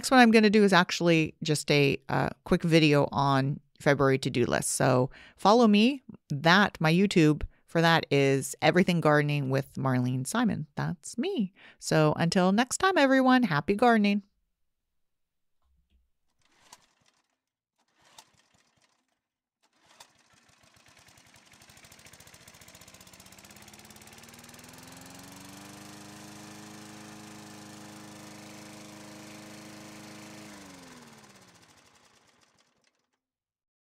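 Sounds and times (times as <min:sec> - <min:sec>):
small motor hum rising in pitch: 0:16.5 - 0:33.1.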